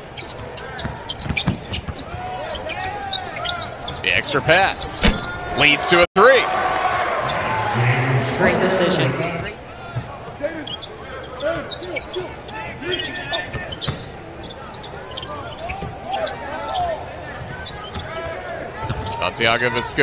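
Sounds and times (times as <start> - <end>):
sneakers squeaking on hardwood: 0.1 - 4.1, 9.6 - 19.2
players calling out: 2.0 - 20.0.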